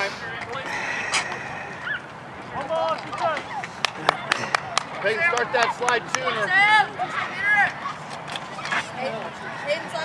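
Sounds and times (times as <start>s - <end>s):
voices calling out: 0.0s - 10.0s
sharp clap: 3.6s - 6.2s.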